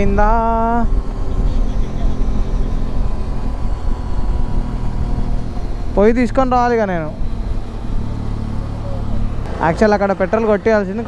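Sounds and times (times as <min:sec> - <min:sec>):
motorcycle engine drone: 0:00.0 - 0:11.0
wind and road noise: 0:00.0 - 0:11.0.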